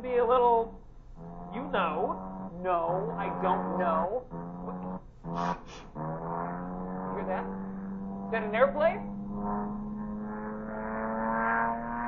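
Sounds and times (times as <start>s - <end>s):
propeller airplane engine drone: 0.8s - 12.0s.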